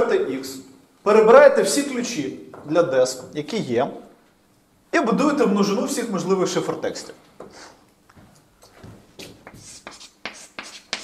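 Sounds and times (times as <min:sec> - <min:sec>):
chalk scratching on blackboard: 0:09.4 - 0:11.0.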